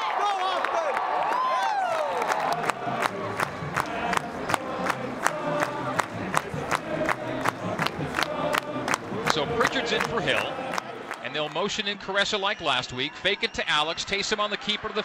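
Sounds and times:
stadium crowd yelling and cheering: 0.0s - 15.0s.

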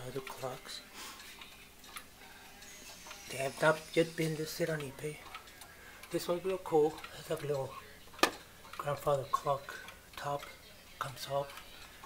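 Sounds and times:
pendulum clock ticking: 0.0s - 12.0s.

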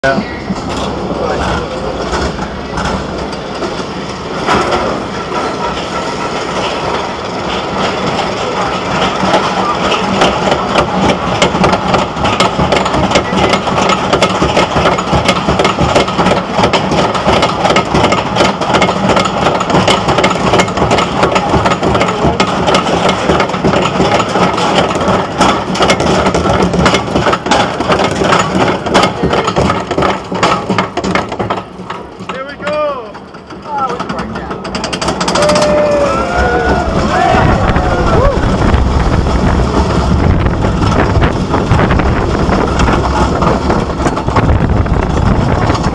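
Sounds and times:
lift chain clacking: 0.0s - 45.9s
mechanical hum: 34.6s - 45.9s.

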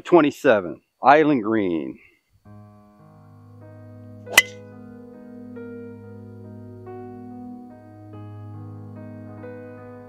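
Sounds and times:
soft piano music: 2.5s - 10.0s
golf driver striking ball: 4.3s - 4.6s.

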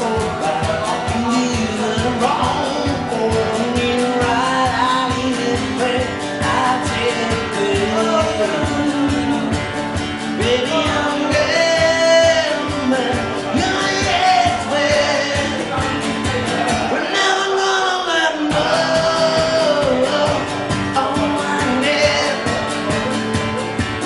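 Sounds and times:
acoustic guitar strumming: 0.0s - 24.0s
man singing: 0.0s - 24.0s.

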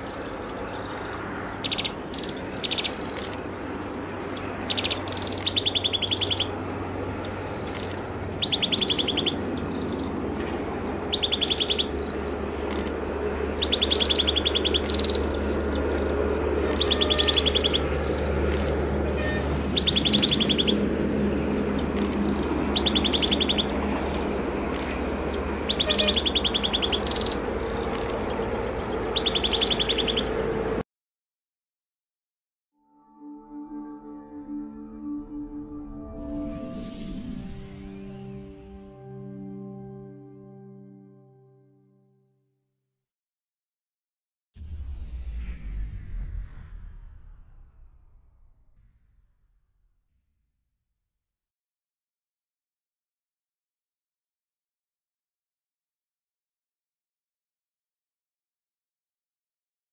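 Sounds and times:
bird chirping trills: 0.0s - 18.7s, 19.7s - 20.9s, 21.5s - 30.5s.

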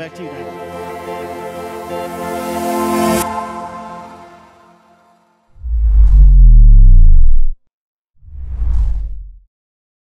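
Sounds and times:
whoosh: 5.6s - 7.6s, 8.2s - 9.4s.

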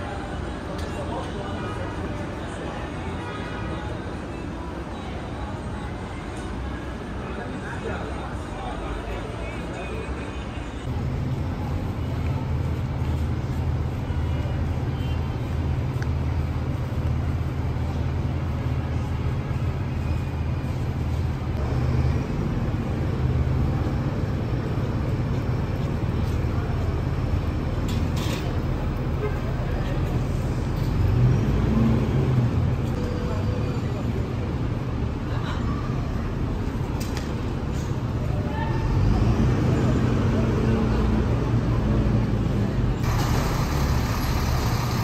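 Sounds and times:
street traffic: 0.0s - 45.0s
diesel engine humming: 41.0s - 45.0s.

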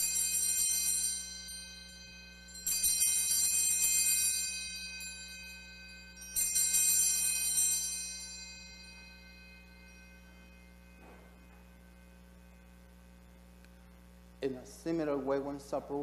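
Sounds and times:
altar bells ringing: 0.0s - 12.8s
low steady hum: 0.0s - 16.0s.

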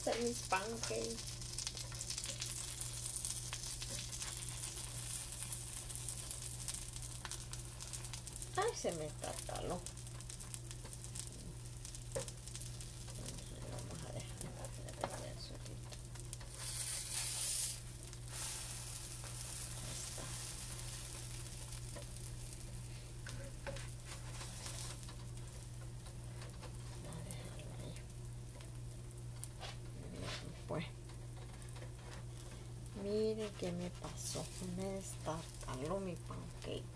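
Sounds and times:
batter sizzling in frying pan: 0.0s - 36.9s.

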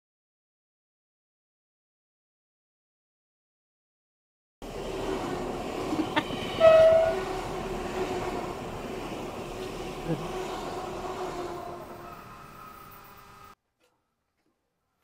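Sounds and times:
electric train passing: 4.6s - 13.6s
train horn note: 6.4s - 8.7s, 10.0s - 12.9s.

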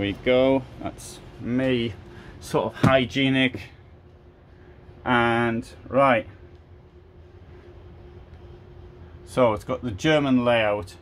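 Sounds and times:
faint constant tone: 0.0s - 11.0s
hall background hum: 0.0s - 11.0s.

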